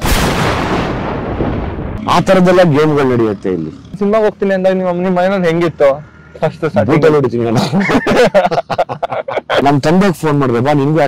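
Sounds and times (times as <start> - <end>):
cinematic boom: 0.0 - 3.1
speech: 2.0 - 7.7, 9.5 - 11.0.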